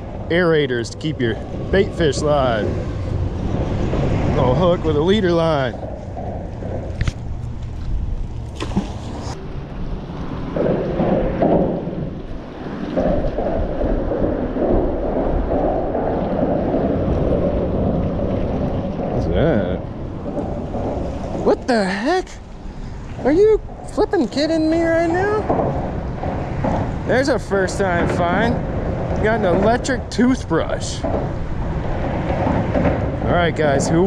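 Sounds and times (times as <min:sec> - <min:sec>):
outdoor noise: 0:00.0 - 0:34.0
wind rumbling on microphone: 0:00.0 - 0:34.0.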